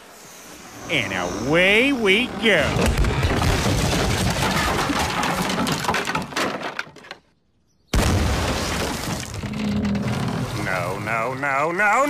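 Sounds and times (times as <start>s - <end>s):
loud smashing crash: 2.8s - 6.6s, 8.0s - 9.5s.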